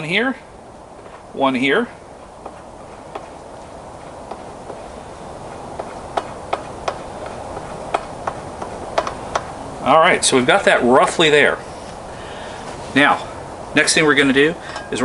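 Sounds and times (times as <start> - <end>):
steady background hiss: 0.0 - 15.0.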